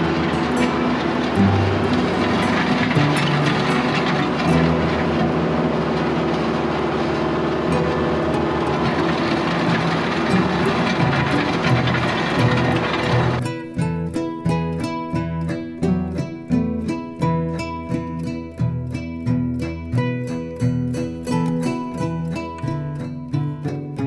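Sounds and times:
blade scraping gravel: 0.0 - 13.4
tractor engine running: 0.0 - 14.4
acoustic guitar music: 0.0 - 24.0.

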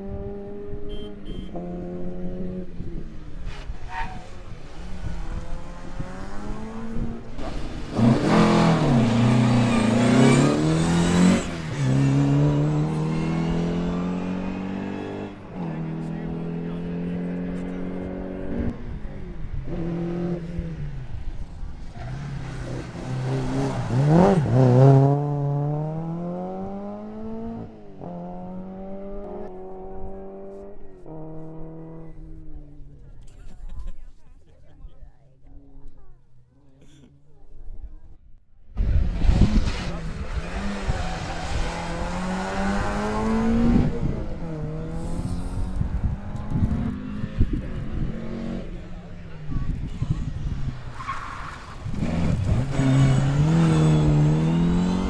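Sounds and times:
rally car engines revving past: 0.0 - 33.0, 38.8 - 55.0.

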